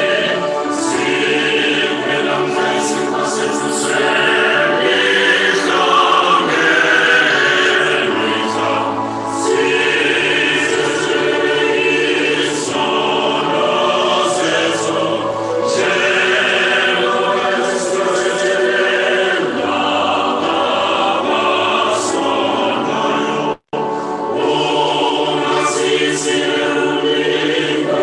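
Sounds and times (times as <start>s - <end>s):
choir singing held chords: 0.0s - 28.0s.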